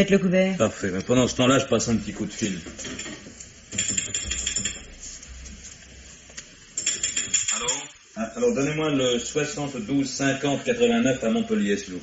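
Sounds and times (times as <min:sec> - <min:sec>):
old telephone clicking and rattling: 0:02.8 - 0:04.9, 0:06.8 - 0:07.8.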